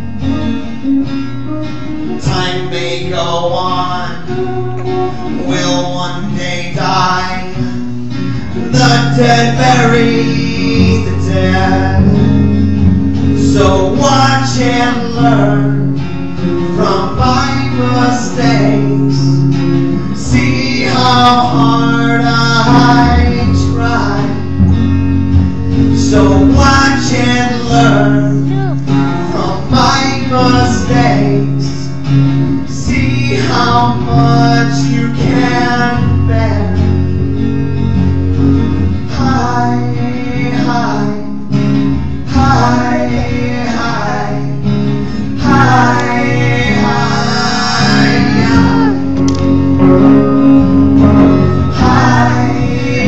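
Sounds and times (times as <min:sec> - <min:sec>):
electric guitar: 0:00.0 - 0:53.0
strummed acoustic guitar: 0:00.0 - 0:53.0
man singing: 0:02.0 - 0:24.8, 0:25.8 - 0:37.1, 0:38.9 - 0:41.6, 0:42.2 - 0:53.0.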